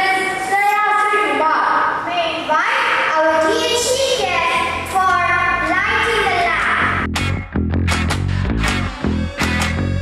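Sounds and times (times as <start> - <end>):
low instrumental accompaniment: 4.8 - 10.0.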